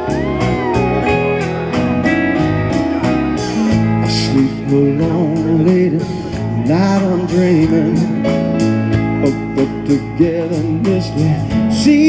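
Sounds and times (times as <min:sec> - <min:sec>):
drum kit beat: 0:00.0 - 0:12.0
soft-rock band playing: 0:00.0 - 0:12.0.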